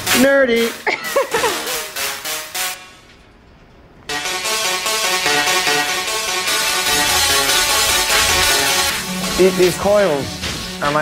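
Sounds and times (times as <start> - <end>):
tesla coil buzzing notes: 4.1 - 9.8.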